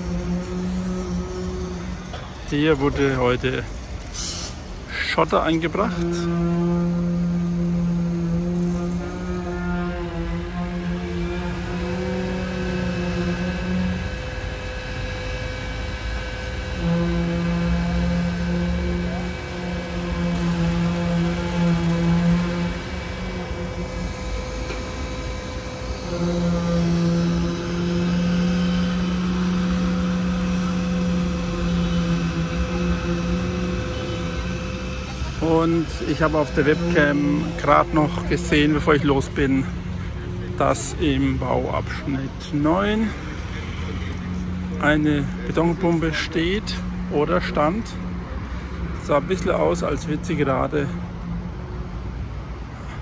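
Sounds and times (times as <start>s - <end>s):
plate compactor machine hum: 0.0s - 53.0s.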